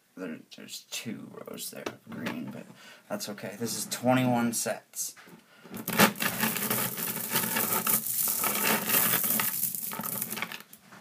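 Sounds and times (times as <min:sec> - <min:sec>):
magnet balls clicking and grinding: 0:05.8 - 0:10.8.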